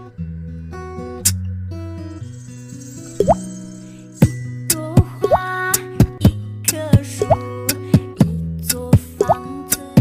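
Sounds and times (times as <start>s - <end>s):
beatbox music: 5.0s - 10.0s.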